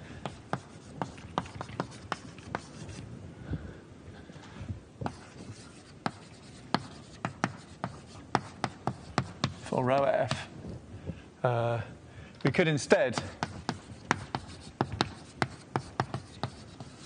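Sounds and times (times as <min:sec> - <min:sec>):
chalk writing on blackboard: 0:00.2 - 0:03.0, 0:05.0 - 0:09.7, 0:13.1 - 0:17.0.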